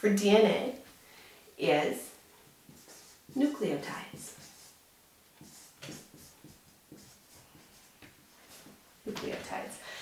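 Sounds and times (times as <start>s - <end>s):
marker writing on whiteboard: 2.5s - 9.6s.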